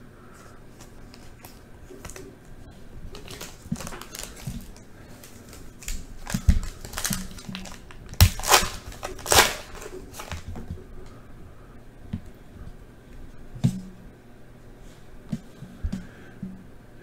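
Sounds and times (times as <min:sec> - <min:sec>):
foil wrapper ripping: 0:03.1 - 0:10.5
foil wrapper crinkling: 0:03.1 - 0:10.6.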